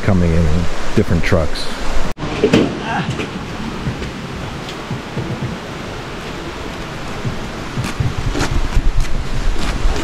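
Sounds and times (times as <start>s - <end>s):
steady rushing outdoor noise: 0.0s - 10.0s.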